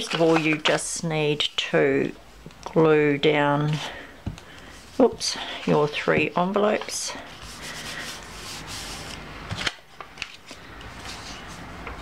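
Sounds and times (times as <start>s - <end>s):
paper envelopes rustling: 0.0s - 1.0s, 6.6s - 11.7s.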